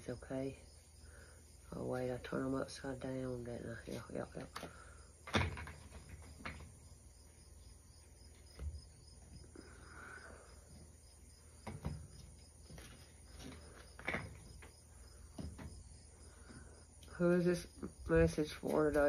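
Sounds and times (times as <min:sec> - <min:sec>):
faint cricket chirping: 0:00.0 - 0:19.0.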